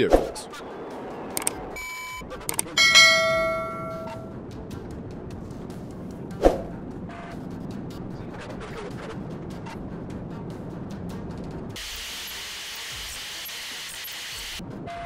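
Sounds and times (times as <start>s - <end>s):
loud ringing bell chime: 2.8s - 4.3s
short ding: 2.8s - 4.3s.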